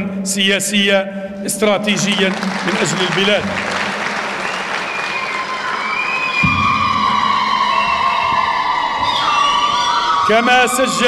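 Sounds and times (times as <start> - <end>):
audience applauding and cheering: 1.9 - 11.0
low thump: 6.4 - 7.6.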